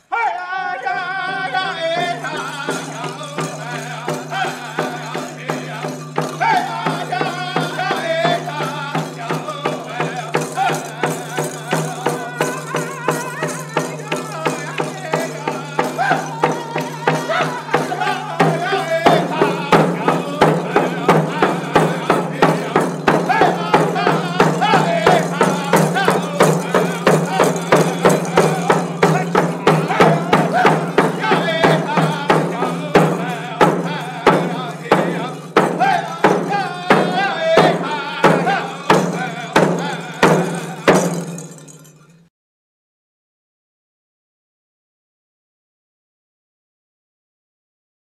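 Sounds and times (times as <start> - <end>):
men singing together: 0.1 - 41.7
hand drums beating: 1.2 - 41.9.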